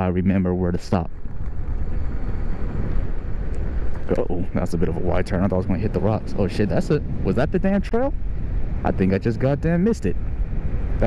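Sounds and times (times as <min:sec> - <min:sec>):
wind buffeting microphone: 0:00.0 - 0:11.0
bike tyres on asphalt: 0:01.1 - 0:06.4.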